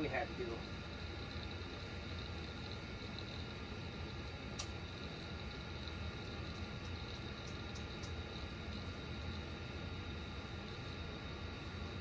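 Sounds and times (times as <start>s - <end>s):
low hum and hiss: 0.0s - 12.0s.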